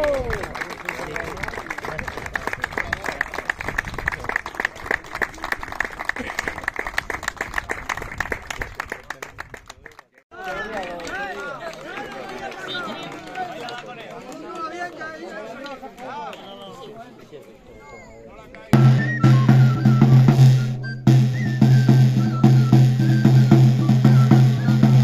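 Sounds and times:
people's voices: 0.0s - 20.2s
drum: 18.8s - 25.0s.

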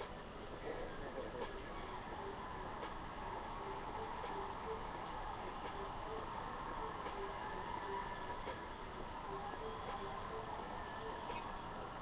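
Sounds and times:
crowd cheering and screaming: 1.6s - 12.0s.

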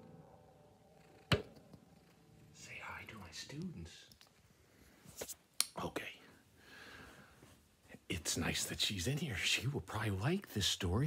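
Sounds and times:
faint steady hum: 0.0s - 11.0s
sharp knock: 1.3s - 1.5s.

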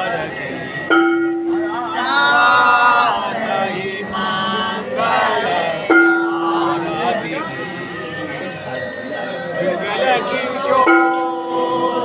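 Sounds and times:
hand bell ringing: 0.0s - 12.0s
voices singing a hymn: 0.0s - 12.0s.

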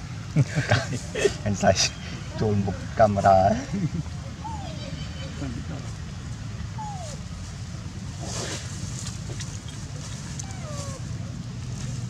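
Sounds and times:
scrape of leaf litter: 8.1s - 12.0s.

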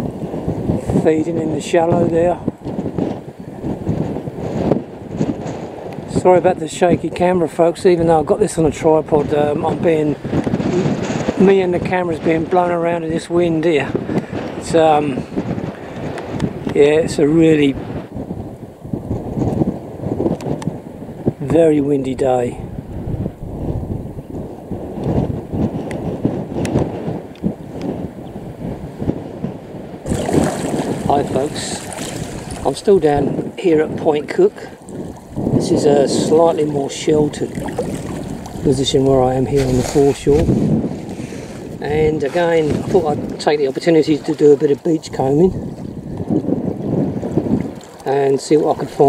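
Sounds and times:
wind buffeting microphone: 0.0s - 49.0s.

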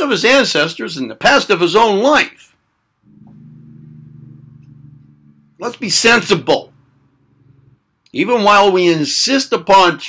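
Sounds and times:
low steady hum: 2.8s - 8.8s.

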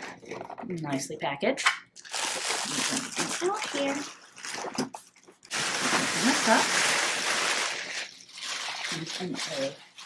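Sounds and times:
plastic bag crinkling: 2.0s - 10.0s.

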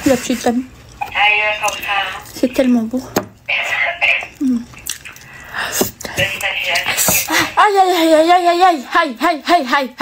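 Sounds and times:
woman eating with wet mouth sounds: 4.3s - 6.0s.

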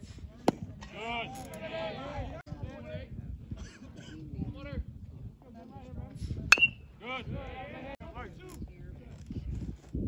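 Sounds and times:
metal bat hitting ball: 6.5s - 6.8s.

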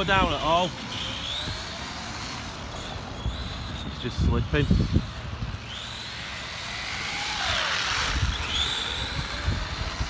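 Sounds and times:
high whine of electric motor: 0.0s - 10.0s.

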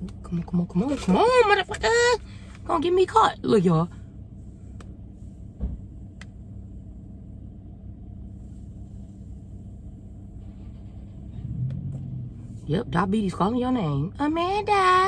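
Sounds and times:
car engine idling: 0.0s - 15.0s.

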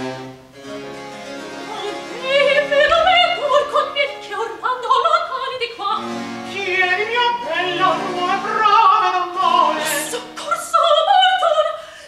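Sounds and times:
harpsichord playing chords: 0.0s - 4.3s.

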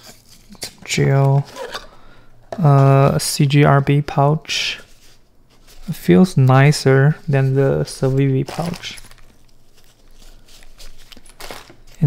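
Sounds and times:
fabric rustling and scuffing: 7.1s - 12.0s.

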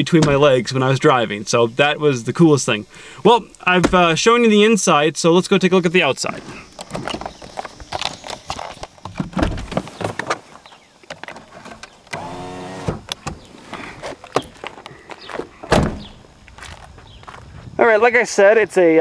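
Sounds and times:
handheld camera rustling and clicks: 6.7s - 12.2s
heavy thump: 15.7s - 16.1s.

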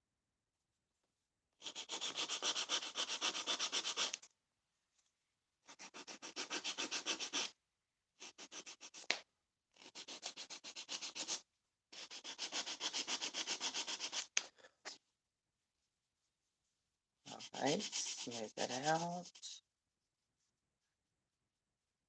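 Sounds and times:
emery board filing plastic: 1.6s - 4.3s, 5.7s - 7.5s, 9.8s - 11.4s, 12.0s - 14.4s, 17.3s - 19.6s.

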